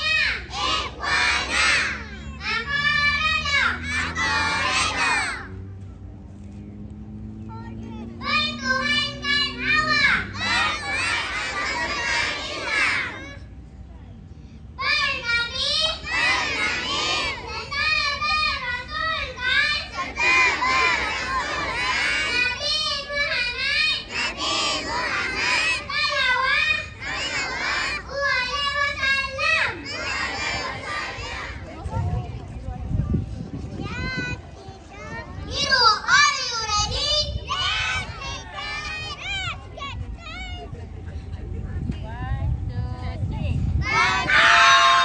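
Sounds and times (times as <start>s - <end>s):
children chanting in unison: 0.0s - 5.5s, 8.2s - 13.4s, 15.8s - 23.3s, 23.9s - 31.7s, 43.8s - 45.0s.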